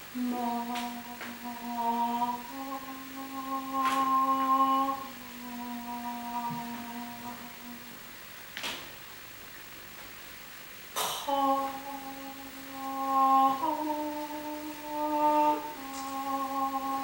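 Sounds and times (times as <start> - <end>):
woman humming long notes: 0.0 - 8.3, 11.0 - 17.0.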